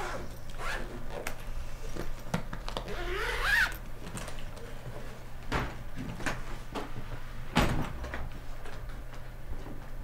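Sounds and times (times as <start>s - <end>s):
zipper pulled shut: 0.0s - 1.0s, 2.8s - 3.8s.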